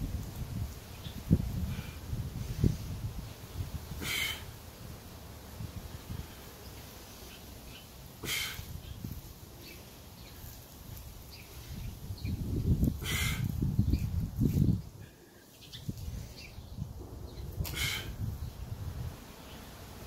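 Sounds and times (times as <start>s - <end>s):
wind buffeting microphone: 0.0s - 6.5s, 10.9s - 15.1s, 15.7s - 19.3s
man's sharp breaths: 3.9s - 4.6s, 8.2s - 8.8s, 13.0s - 13.6s, 17.6s - 18.3s.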